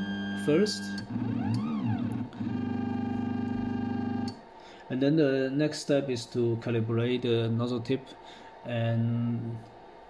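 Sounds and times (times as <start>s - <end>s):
stepper motors whining: 0.0s - 4.4s.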